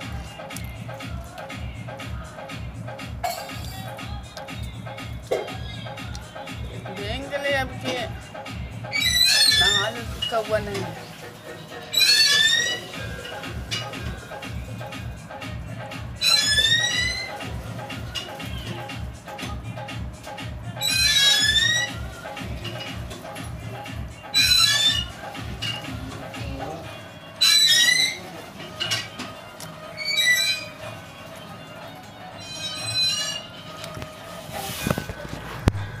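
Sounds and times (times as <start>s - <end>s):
background music with steady beat: 0.0s - 36.0s
parakeet shrill call: 8.9s - 10.3s, 11.9s - 13.2s, 16.2s - 17.4s, 20.8s - 22.0s, 24.3s - 25.2s, 27.4s - 28.3s, 30.0s - 30.8s, 32.4s - 33.5s.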